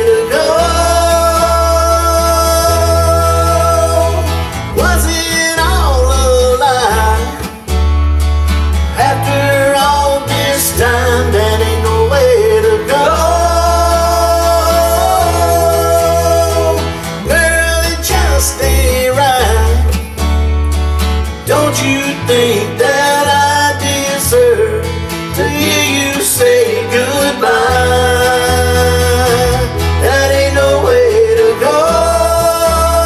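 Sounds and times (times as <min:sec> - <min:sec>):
man singing: 0:00.0 - 0:07.6, 0:08.9 - 0:20.2, 0:21.4 - 0:33.0
acoustic guitar: 0:00.0 - 0:33.0
electric bass guitar: 0:00.0 - 0:33.0.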